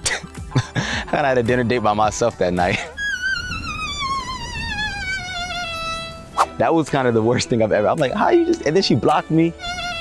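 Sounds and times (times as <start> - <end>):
violin note sliding downward: 3.0 - 6.6, 9.5 - 10.0.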